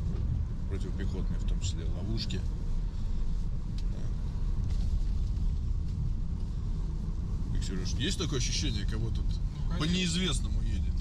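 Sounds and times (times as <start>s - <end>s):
car driving on dirt road: 0.0s - 11.0s.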